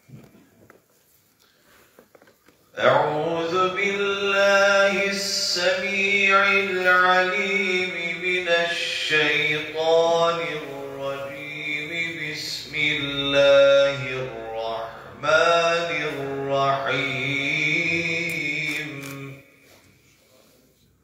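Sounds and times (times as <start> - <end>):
man chanting into a microphone: 2.8 - 19.8.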